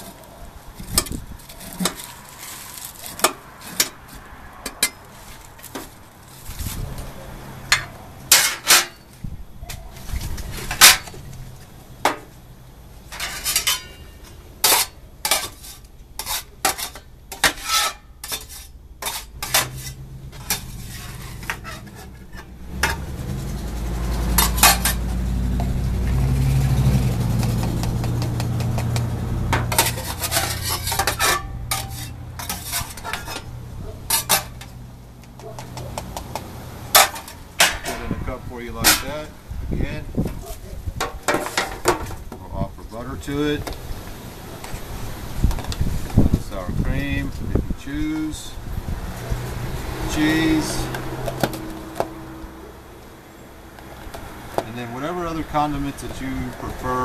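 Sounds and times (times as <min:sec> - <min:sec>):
metal scoop scraping pan: 0:00.8 - 0:06.9, 0:07.7 - 0:09.1, 0:10.0 - 0:11.3, 0:13.1 - 0:25.8, 0:26.6 - 0:34.8, 0:36.9 - 0:39.3, 0:40.4 - 0:42.2
knife scraping on metal pan: 0:13.1 - 0:23.1, 0:24.3 - 0:25.1, 0:28.2 - 0:34.7.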